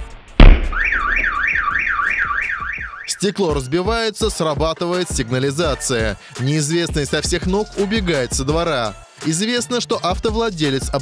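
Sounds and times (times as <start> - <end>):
object smashing windscreen: 0.4 - 1.5
car alarm siren wailing: 0.6 - 3.2.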